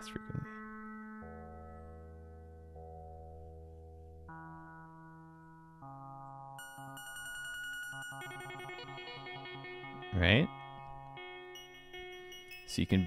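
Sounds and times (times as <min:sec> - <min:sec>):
electronic guitar-voice notes: 0:08.2 - 0:13.0.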